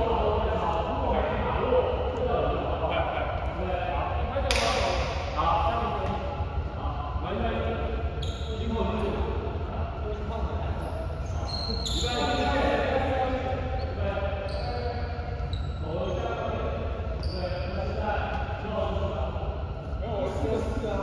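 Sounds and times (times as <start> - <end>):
steady low hum: 0.0 - 21.0
sneakers squeaking: 8.0 - 9.2, 10.8 - 12.7, 13.7 - 19.1.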